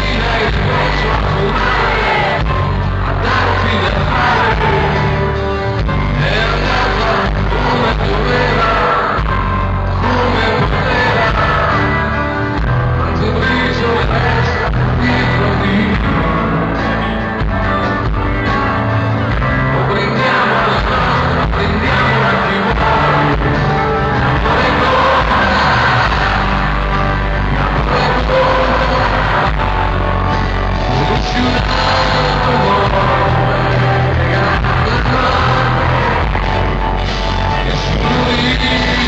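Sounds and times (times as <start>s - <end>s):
person singing: 0.0s - 17.6s, 19.3s - 39.0s
live rock band playing: 0.0s - 39.0s.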